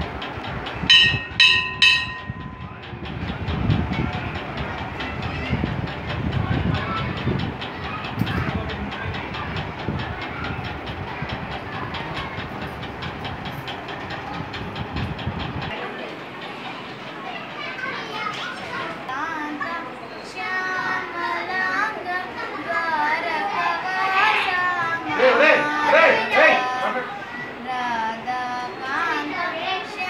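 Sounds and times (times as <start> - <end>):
fast rhythmic clatter: 0.0 - 18.6
person singing wavering melody: 19.1 - 29.7.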